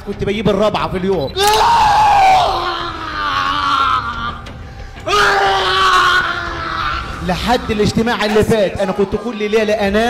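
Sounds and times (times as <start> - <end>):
man screaming: 1.4 - 9.8.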